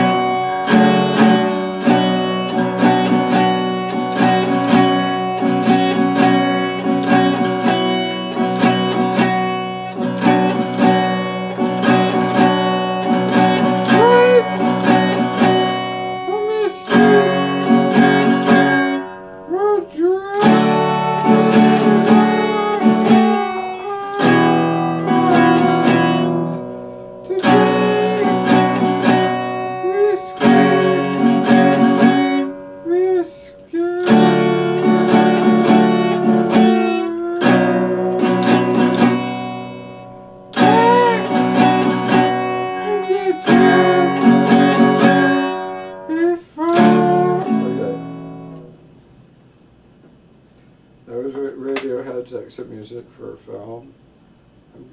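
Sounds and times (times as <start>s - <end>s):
acoustic guitar chords: 0.0s - 52.2s.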